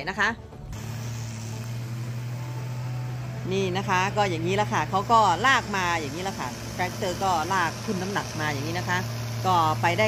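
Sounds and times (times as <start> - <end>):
tractor engine working hard: 0.0 - 10.0.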